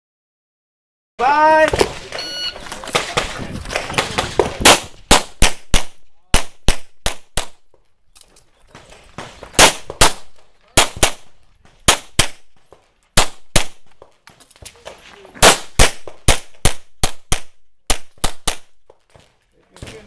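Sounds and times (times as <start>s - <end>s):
pistol shots in quick pairs: 2.9s - 7.6s, 9.2s - 12.5s, 13.2s - 13.8s, 15.4s - 18.7s.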